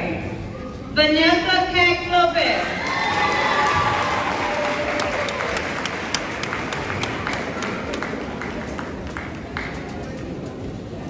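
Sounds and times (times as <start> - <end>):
crowd voices: 0.0 - 11.0
audience applauding: 2.8 - 10.1
individual sharp claps: 2.8 - 10.1.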